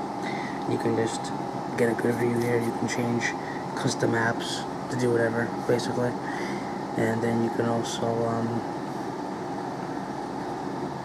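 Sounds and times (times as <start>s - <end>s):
background rumble and hiss: 0.0s - 11.0s.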